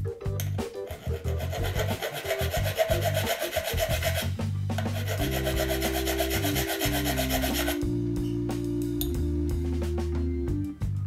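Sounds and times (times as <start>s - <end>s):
background music with bass line: 0.0s - 11.0s
hand file rasping on steel: 0.8s - 7.8s.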